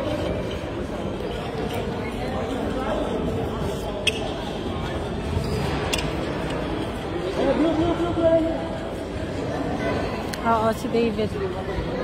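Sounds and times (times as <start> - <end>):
echoing chatter of many voices: 0.0 - 12.0.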